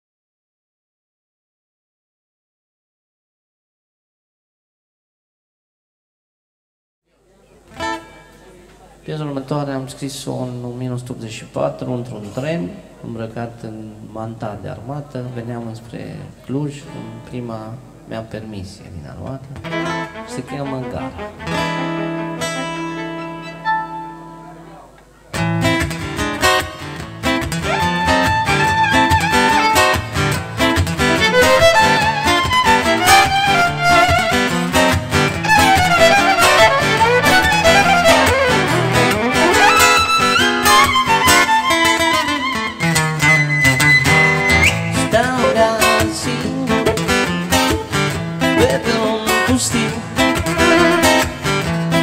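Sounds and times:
acoustic guitar strumming: 7.7s - 8.5s, 19.6s - 52.0s
violin sliding melody: 19.7s - 24.5s, 27.6s - 30.3s, 30.9s - 44.8s, 50.2s - 51.6s.

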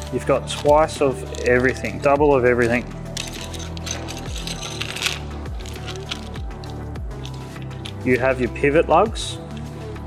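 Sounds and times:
background music with steady beat: 0.0s - 10.0s
plastic parts clinking onto bench: 3.1s - 8.1s.

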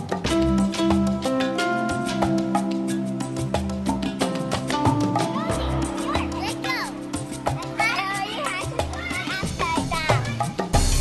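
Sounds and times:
music with held notes: 0.0s - 11.0s
children calling out: 5.1s - 10.6s.

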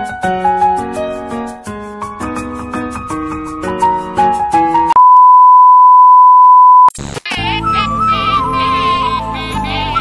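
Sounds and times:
loud steady beep tone: 5.0s - 6.9s
glitchy crackle: 6.9s - 8.4s.

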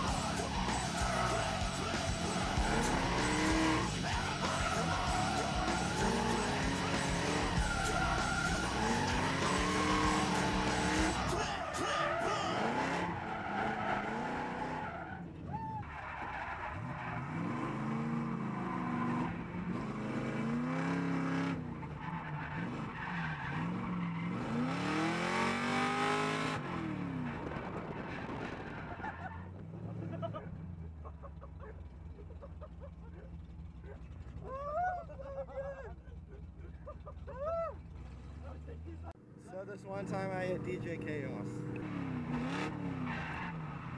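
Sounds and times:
car engine revving: 0.0s - 15.4s, 16.2s - 34.5s, 37.8s - 43.9s
tyre squeal: 0.0s - 17.5s.

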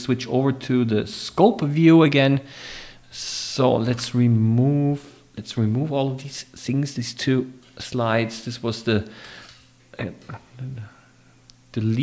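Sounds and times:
man speaking hesitantly: 10.0s - 11.0s.

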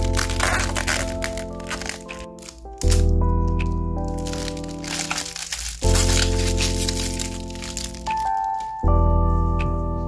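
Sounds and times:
plastic wrapper crinkling: 0.0s - 8.8s
background music of held chords: 0.0s - 10.0s.

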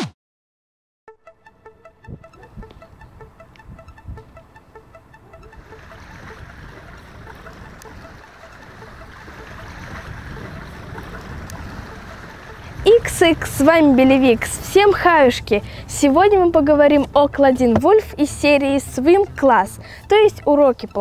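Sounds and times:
faint repeating music notes: 1.2s - 21.0s
wind buffeting microphone: 2.0s - 4.4s, 5.4s - 18.2s.

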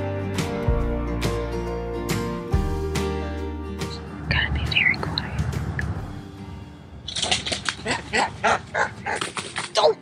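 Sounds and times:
person laughing: 7.7s - 9.1s.

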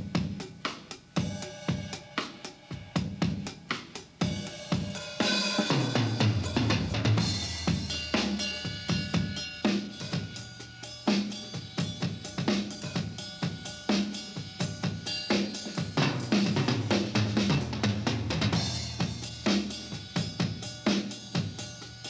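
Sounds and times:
rock drum groove: 0.0s - 22.0s
cymbal crashes: 4.2s - 17.8s.

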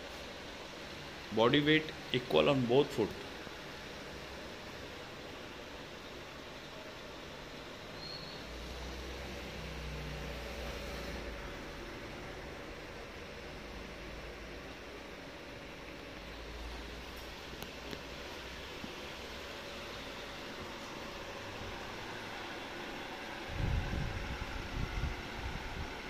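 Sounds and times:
room noise hiss: 0.0s - 26.0s.

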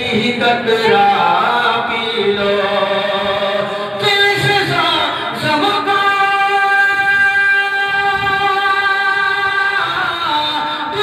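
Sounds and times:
man singing into a microphone: 0.0s - 11.0s.

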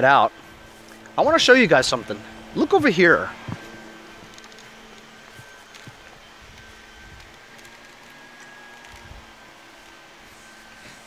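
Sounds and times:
low constant hum: 0.0s - 11.0s.

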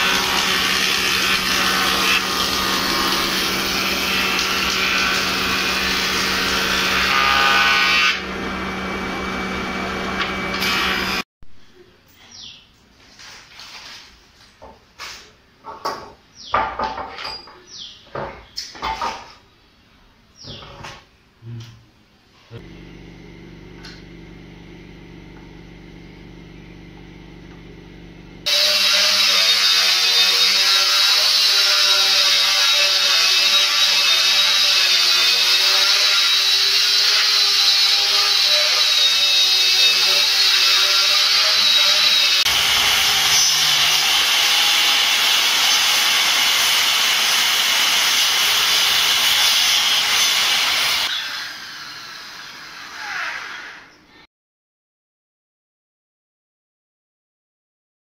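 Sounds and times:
power saw cutting wood: 0.0s - 11.2s, 22.6s - 54.0s.

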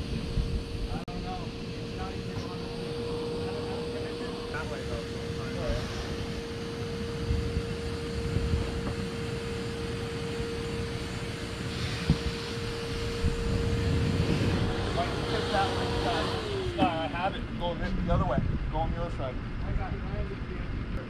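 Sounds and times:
steady mechanical hum: 0.0s - 21.0s.

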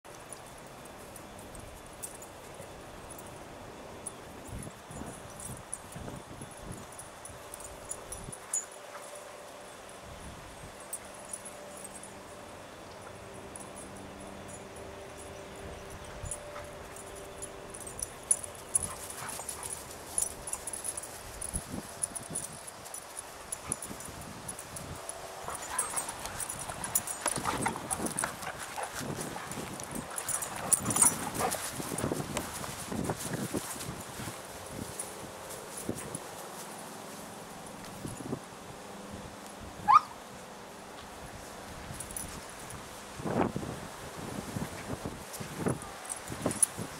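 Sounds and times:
dogs scuffling on grass: 0.1s - 38.6s, 40.9s - 46.9s.

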